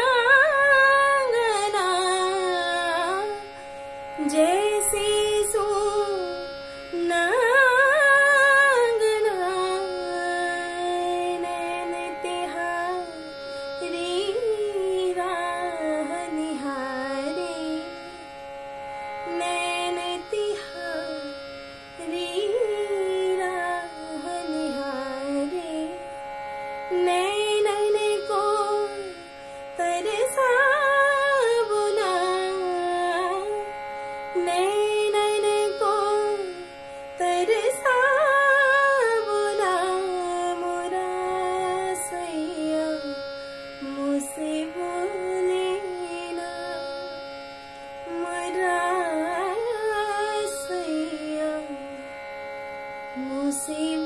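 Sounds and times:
woman singing: 0.0s - 18.3s, 19.2s - 21.4s, 22.0s - 26.0s, 26.9s - 47.1s, 48.0s - 52.1s, 53.1s - 54.0s.

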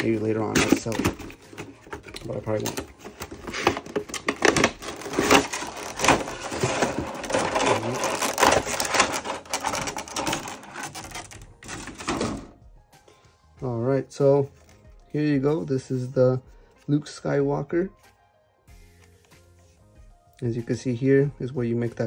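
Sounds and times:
plastic packaging crinkling: 0.0s - 12.5s
cardboard rustling: 0.0s - 12.6s.

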